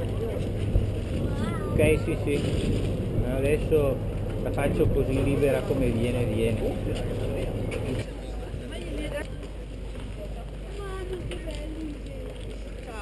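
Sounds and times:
faint voices of people: 0:00.0 - 0:02.7, 0:03.3 - 0:13.0
low rumble: 0:00.0 - 0:08.7
ferry engine humming: 0:00.0 - 0:13.0.

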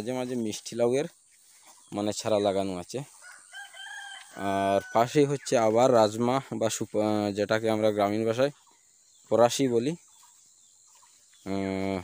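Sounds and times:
rooster crowing: 0:03.2 - 0:05.4.

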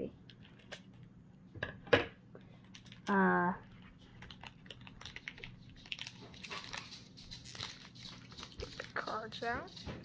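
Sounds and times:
foil wrapper crinkling: 0:02.7 - 0:09.8.

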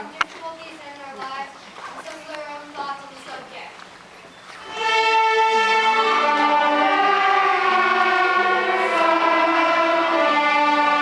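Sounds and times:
violins playing slow melody: 0:04.6 - 0:11.0.

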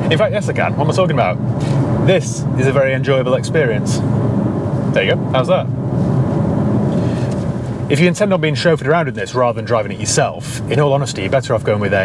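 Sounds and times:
car engine hum: 0:00.0 - 0:12.0.

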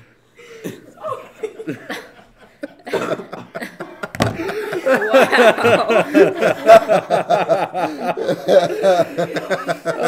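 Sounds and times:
people laughing: 0:00.6 - 0:10.0.

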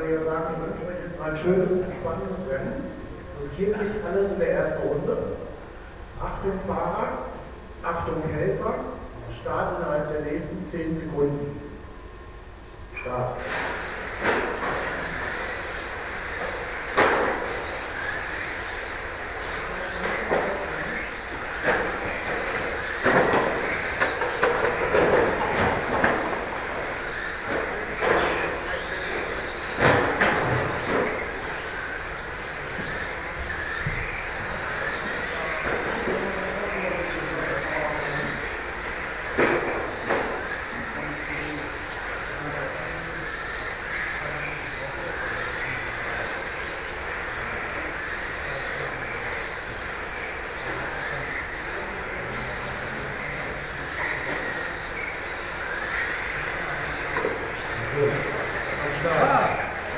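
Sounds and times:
rc car motors whining: 0:11.6 - 0:59.9
sharp knocks: 0:16.9 - 0:17.6.

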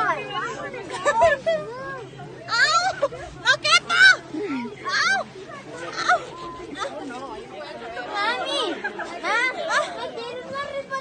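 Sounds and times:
voices talking and calling out: 0:00.0 - 0:11.0.

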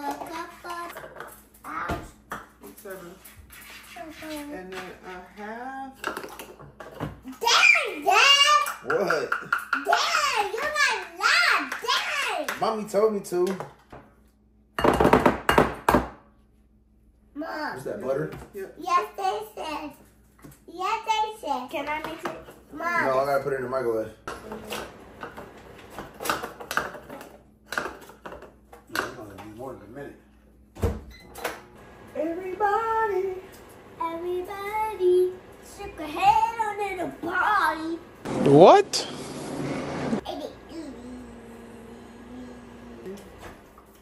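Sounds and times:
child's gliding voice: 0:32.5 - 0:38.0, 0:40.2 - 0:43.2.

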